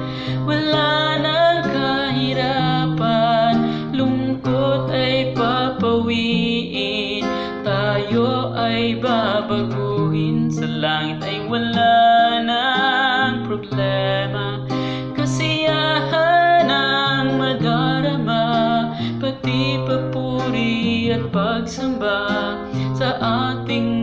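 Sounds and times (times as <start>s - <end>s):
guitar accompaniment: 0.0s - 24.0s
person singing: 0.0s - 24.0s.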